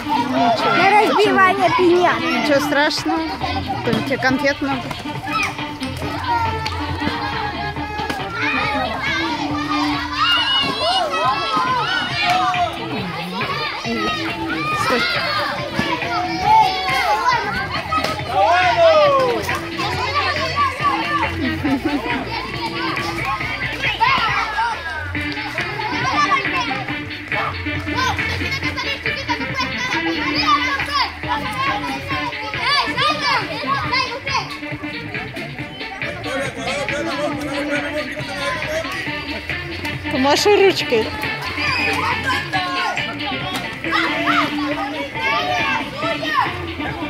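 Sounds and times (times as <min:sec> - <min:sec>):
children chattering: 0:00.0 - 0:47.0
music playing: 0:00.0 - 0:47.0.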